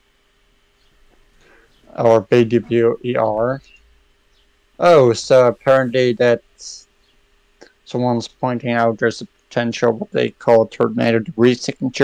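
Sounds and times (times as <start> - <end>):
thin steady hum: 0.0 - 12.0
person speaking: 1.9 - 3.8, 4.8 - 6.8, 7.9 - 12.0.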